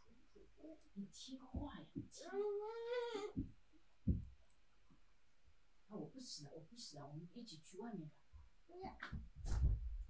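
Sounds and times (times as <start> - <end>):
short low thump: 9.2 - 10.0.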